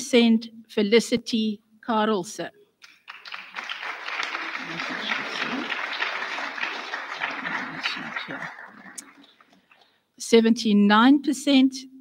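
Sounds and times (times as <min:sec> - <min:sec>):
audience applauding: 0:02.8 - 0:09.8.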